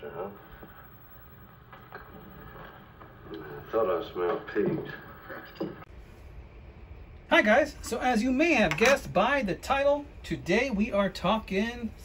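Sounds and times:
old film soundtrack hum: 0.0 - 8.5.

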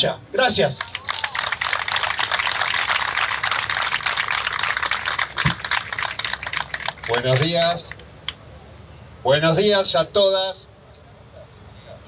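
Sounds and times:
crowd applauding: 0.8 - 8.1.

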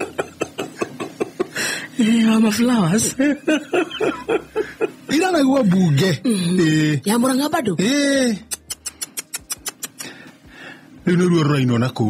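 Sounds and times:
person chuckling rhythmically: 0.0 - 1.7, 3.2 - 5.1, 8.5 - 10.3.

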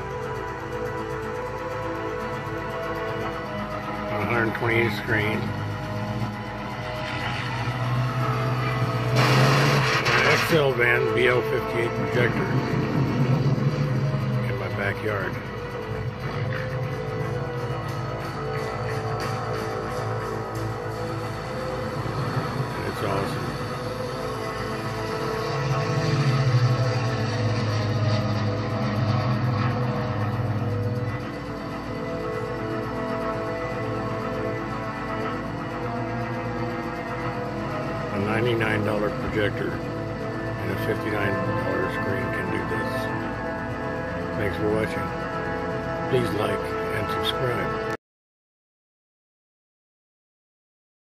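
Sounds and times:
film score music: 0.0 - 48.0
propeller plane engine drone: 0.0 - 48.0
loud rushing noise: 6.8 - 11.2.

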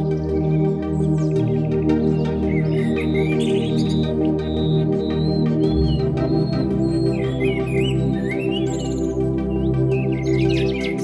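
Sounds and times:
ambient synthesizer chords: 0.0 - 11.0
songbirds chirping: 0.0 - 11.0.

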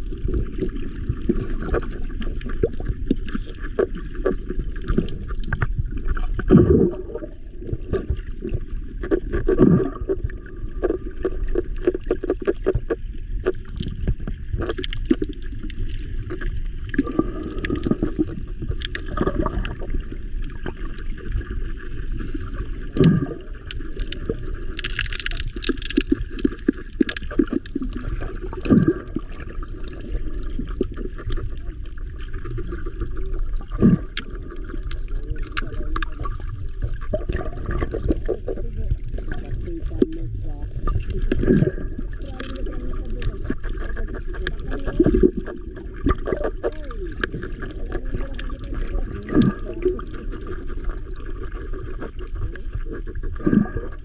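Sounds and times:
small underwater clicks and knocks: 0.0 - 54.0
underwater rumble of moving water: 0.0 - 54.0.

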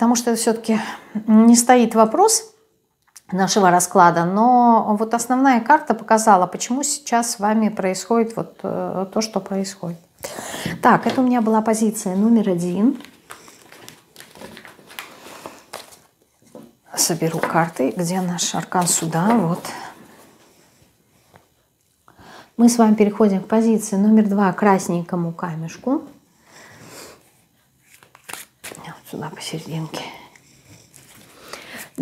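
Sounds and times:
cards rustling and clicking: 13.0 - 16.0, 27.8 - 28.8
cards handled: 27.8 - 28.8.

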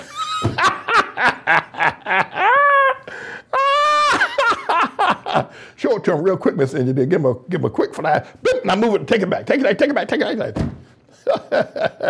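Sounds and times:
man laughing heartily: 0.0 - 5.6, 11.1 - 12.0
man's high whooping cries: 2.3 - 4.8.

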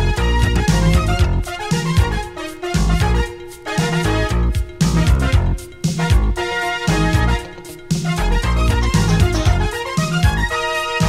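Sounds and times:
heavy bass line: 0.0 - 10.5
sustained keyboard chords: 0.0 - 11.0.

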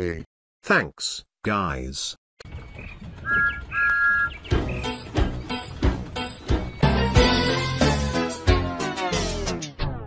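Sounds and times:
faint bird chirps: 2.5 - 7.0.

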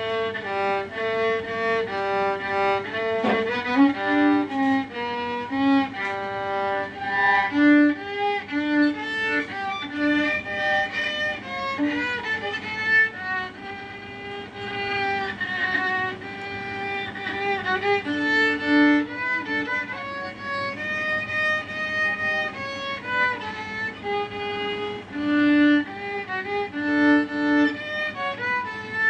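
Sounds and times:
solo violin melody: 0.0 - 29.0.

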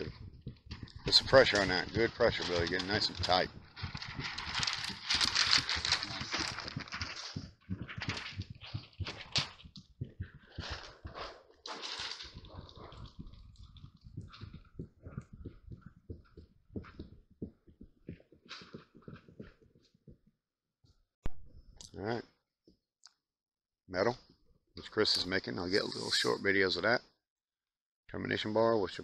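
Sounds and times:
roller rubbing and scraping rubber: 0.0 - 16.0.

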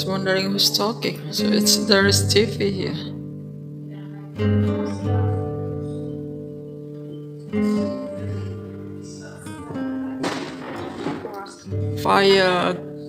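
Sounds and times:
acoustic guitar music: 0.0 - 13.0.

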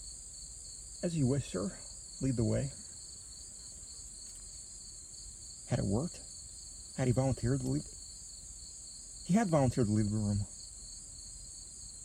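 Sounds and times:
shrill insect chorus: 0.0 - 12.0.

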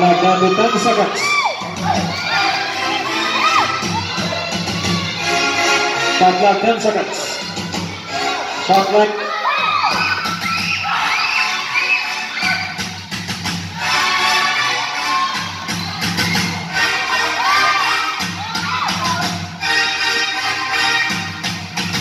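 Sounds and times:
spectators shouting and cheering: 0.0 - 19.6.

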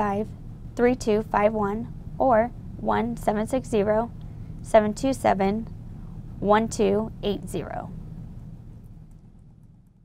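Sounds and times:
low background hum: 0.0 - 10.0.

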